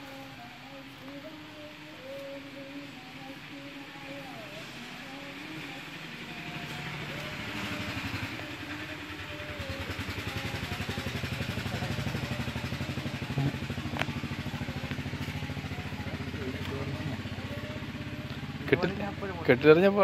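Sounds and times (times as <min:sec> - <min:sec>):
engine running with fast throb: 0:00.0 - 0:20.0.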